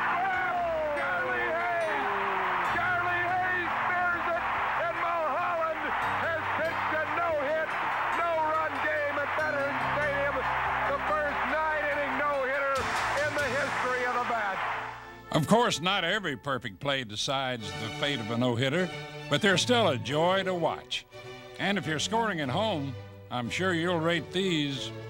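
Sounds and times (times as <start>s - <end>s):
stadium crowd cheering: 0.0s - 15.7s.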